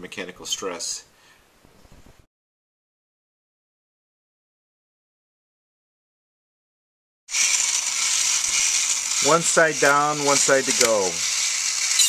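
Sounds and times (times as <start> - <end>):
toy motor and gears whirring: 7.3 - 12.0.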